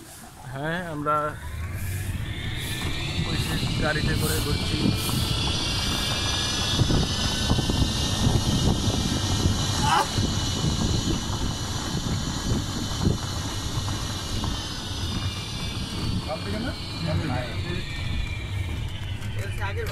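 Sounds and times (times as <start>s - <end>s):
wind buffeting microphone: 0.0s - 19.9s
electric motor whine: 0.6s - 19.9s.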